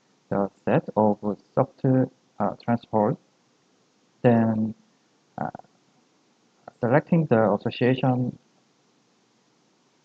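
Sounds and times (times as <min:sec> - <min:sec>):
man talking: 0:00.3 - 0:03.2, 0:04.3 - 0:04.8, 0:05.4 - 0:05.6, 0:06.7 - 0:08.4
vocal hesitation sound: 0:00.3 - 0:03.2, 0:04.3 - 0:04.7, 0:05.4 - 0:05.6, 0:06.7 - 0:08.3.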